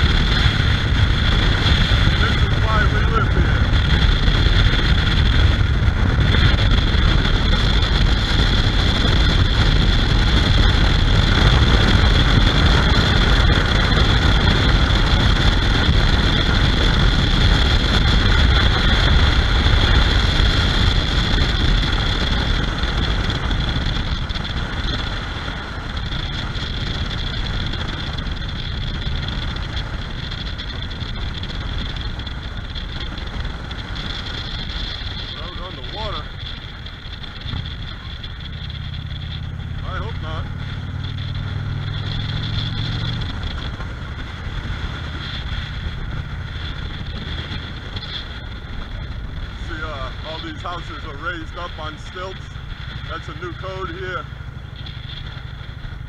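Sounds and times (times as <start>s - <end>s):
motorcycle engine: 0.0s - 56.0s
road noise: 0.0s - 56.0s
wind buffeting microphone: 0.0s - 56.0s.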